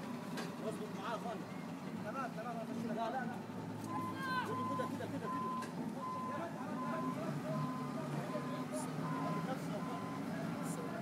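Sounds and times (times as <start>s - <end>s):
wheel loader engine running: 0.0s - 11.0s.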